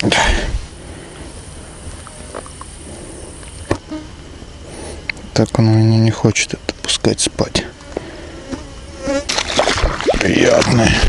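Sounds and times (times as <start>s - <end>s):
rustle: 0.0s - 6.0s
flying insect buzzing: 0.6s - 5.1s, 7.6s - 10.1s.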